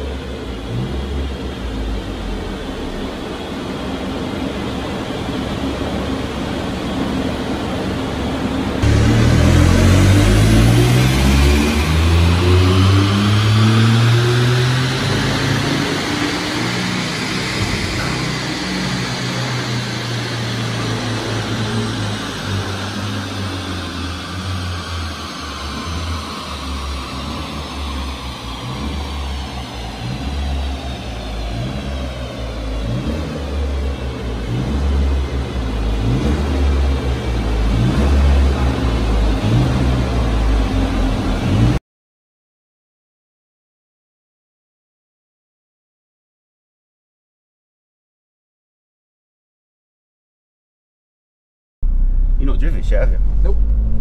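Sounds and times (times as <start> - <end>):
car engine pulling hard: 0.0 - 41.8.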